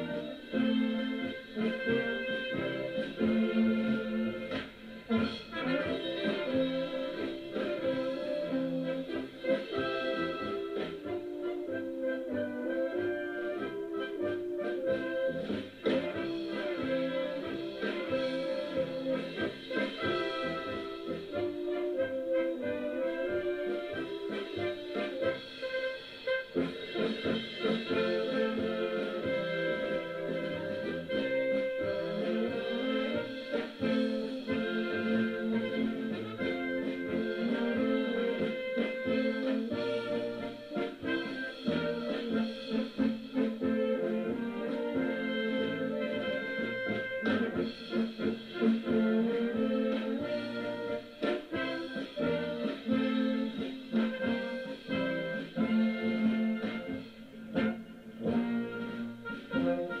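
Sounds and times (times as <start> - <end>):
wind band playing: 0.0 - 60.0.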